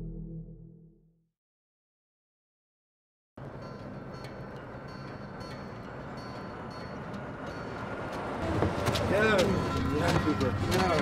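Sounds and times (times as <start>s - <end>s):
voices: 8.4s - 11.0s.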